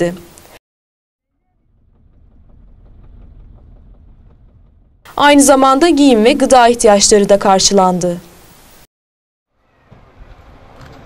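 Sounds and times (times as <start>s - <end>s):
car driving engine and road noise: 1.3s - 5.1s.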